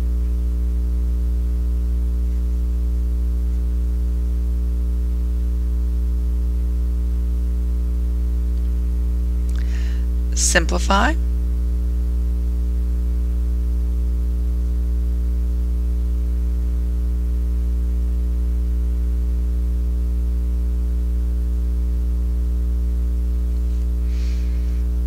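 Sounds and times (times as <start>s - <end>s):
electrical mains hum: 0.0s - 25.0s.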